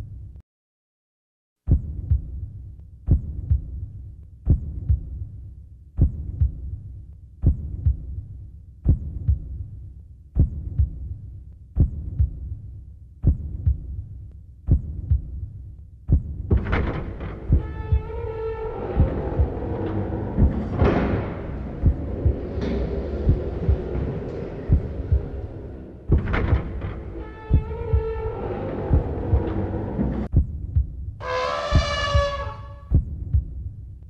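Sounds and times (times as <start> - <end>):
deep double thump: 18.9 - 29.6.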